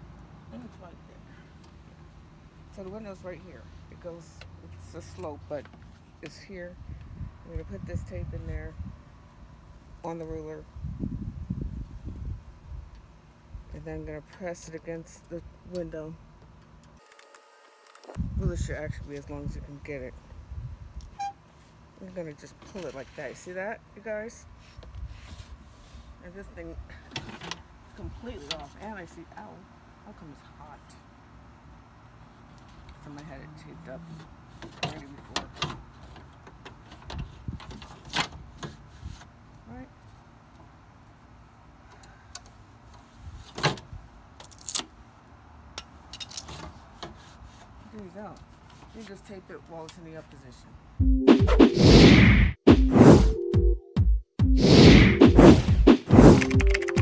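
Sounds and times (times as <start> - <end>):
short high-pitched squeak: 21.1 - 21.4.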